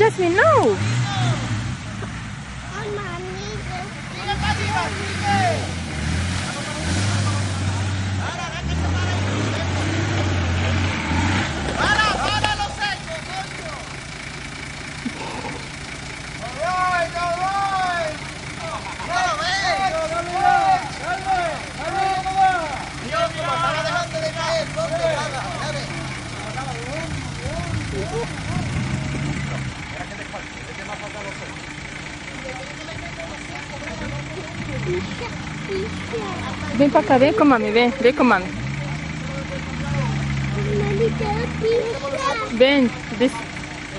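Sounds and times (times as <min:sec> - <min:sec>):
suv engine running low: 0:00.0 - 0:43.9
people calling out: 0:11.7 - 0:14.0, 0:15.0 - 0:29.7, 0:32.1 - 0:43.9.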